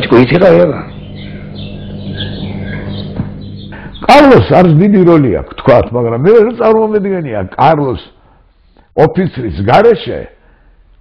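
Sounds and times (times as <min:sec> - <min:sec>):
birds chirping: 0:00.0 - 0:08.9
steady low hum: 0:00.0 - 0:09.6.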